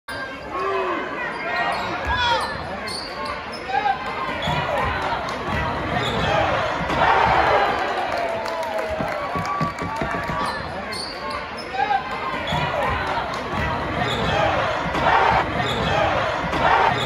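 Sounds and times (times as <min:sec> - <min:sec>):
crowd voices: 0:00.1 - 0:17.0
sneaker squeaks: 0:01.3 - 0:04.9, 0:10.2 - 0:13.0.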